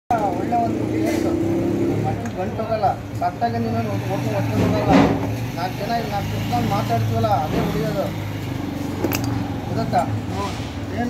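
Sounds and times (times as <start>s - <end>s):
voices talking: 0.1s - 11.0s.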